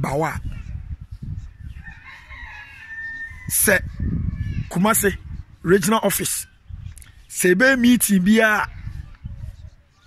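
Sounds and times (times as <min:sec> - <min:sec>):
rooster crowing: 0:01.8 - 0:03.6.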